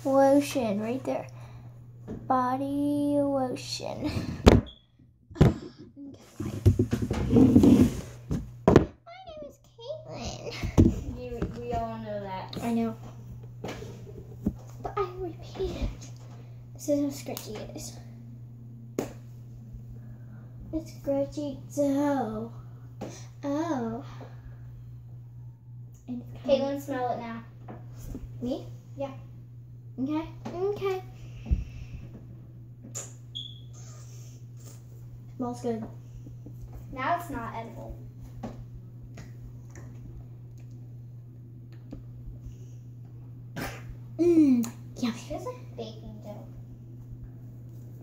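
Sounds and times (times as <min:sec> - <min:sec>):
steady low hum: 0:00.0 - 0:48.0
dough slapped between hands: 0:19.0 - 0:19.2.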